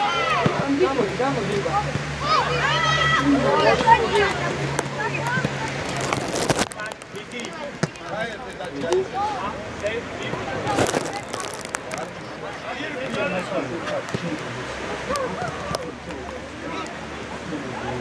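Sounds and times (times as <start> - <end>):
people calling out and shouting: 0.0 - 6.0
rushes of noise: 4.3 - 7.1.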